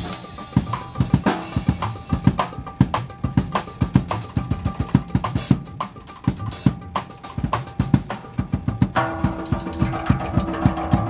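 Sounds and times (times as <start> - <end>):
backing track held notes: 0.0 - 11.0
cymbals: 0.0 - 11.0.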